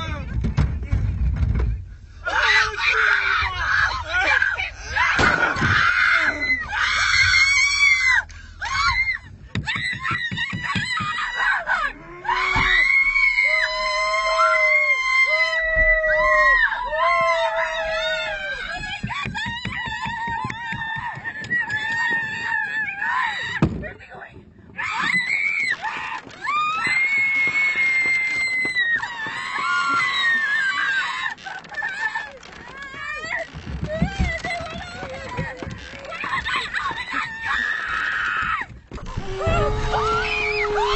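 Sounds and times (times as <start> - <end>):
people screaming: 2.2 - 23.6, 24.8 - 40.9.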